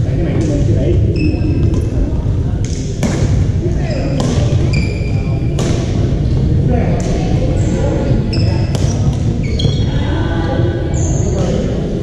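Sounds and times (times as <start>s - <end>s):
shoe squeaks on floor: 1.1s - 1.7s, 3.8s - 5.6s, 8.3s - 10.1s
racket striking ball: 2.6s - 3.4s, 4.2s - 4.5s.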